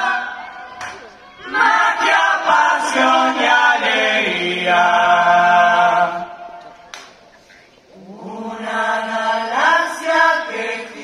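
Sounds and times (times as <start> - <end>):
chorus singing in harmony: 0.0 - 6.6, 8.0 - 11.0.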